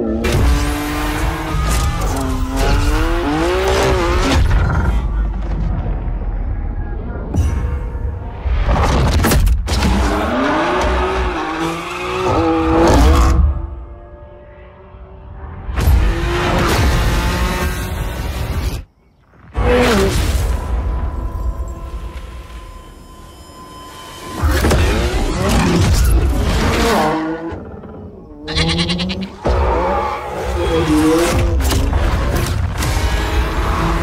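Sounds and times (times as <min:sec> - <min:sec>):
tyres squealing and skidding: 0:28.4 - 0:31.3.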